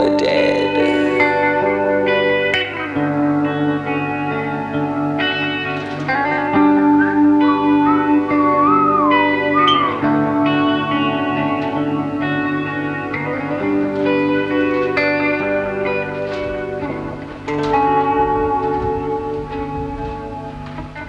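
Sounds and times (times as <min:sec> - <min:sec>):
electric guitar playing: 0:00.0 - 0:21.0.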